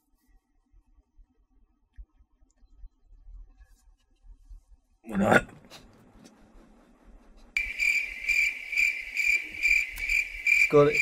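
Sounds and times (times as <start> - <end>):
crickets chirping: 7.6 - 11.0.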